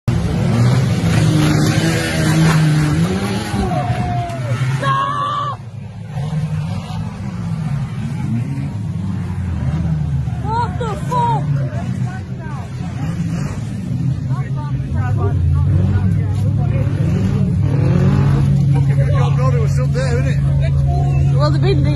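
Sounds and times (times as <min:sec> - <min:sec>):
racing car engines revving: 0:00.1 - 0:21.9.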